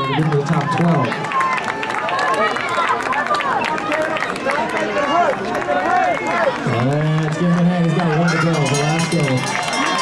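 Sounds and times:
crowd cheering: 0.0 - 10.0
scattered clapping: 0.1 - 10.0
man's voice: 6.6 - 9.5.

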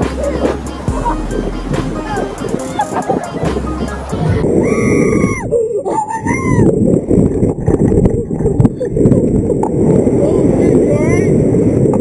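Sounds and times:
low rush of noise: 0.0 - 5.9, 6.6 - 12.0.

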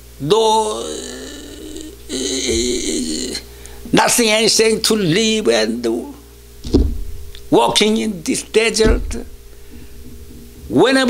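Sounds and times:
man speaking: 0.2 - 6.2, 7.5 - 9.3
man's wordless vocal sound: 0.3 - 4.2.

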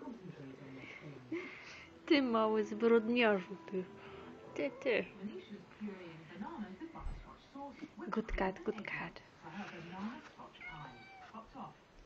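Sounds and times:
cat meowing: 10.6 - 11.5.

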